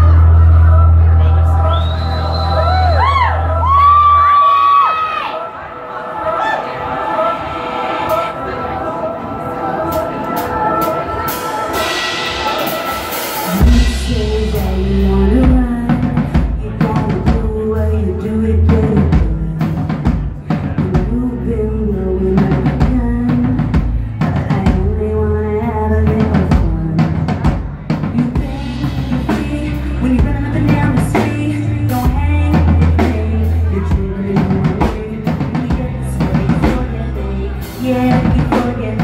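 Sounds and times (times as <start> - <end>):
heavy bass: 0.0 - 4.9, 10.4 - 39.0.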